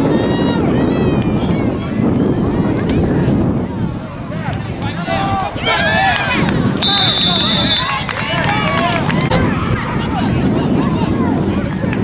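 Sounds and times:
wind buffeting microphone: 0:00.0 - 0:12.0
people shouting: 0:04.4 - 0:10.4
whistle blown: 0:06.8 - 0:08.0.

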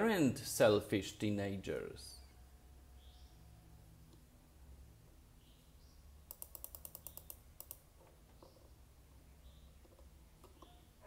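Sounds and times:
sharp light clicks: 0:06.3 - 0:07.8.

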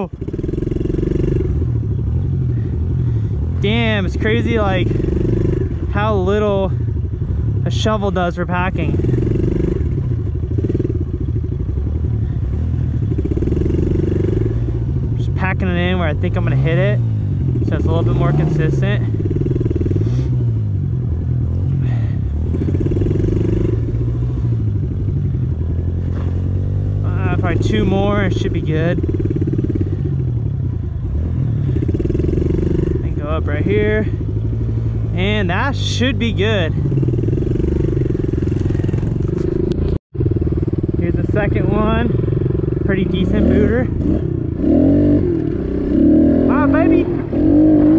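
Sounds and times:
motorbike engine revving: 0:00.0 - 0:47.9.

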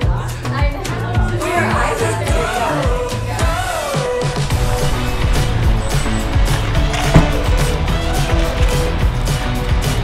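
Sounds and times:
background music with beat and bass: 0:00.0 - 0:10.0.

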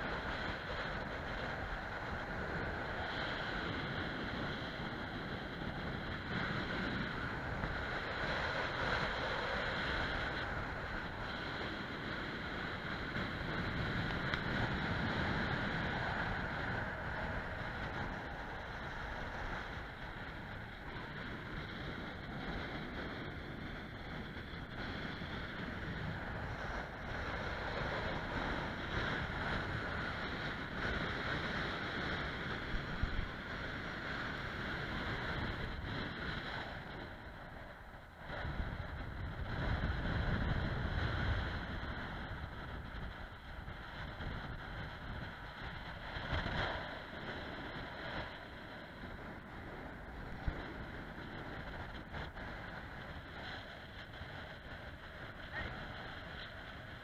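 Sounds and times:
wind rushing over microphone: 0:00.0 - 0:57.0.

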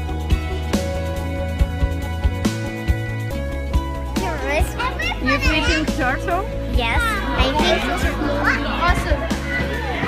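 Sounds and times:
background music: 0:00.0 - 0:10.0
children calling excitedly: 0:04.0 - 0:10.0.

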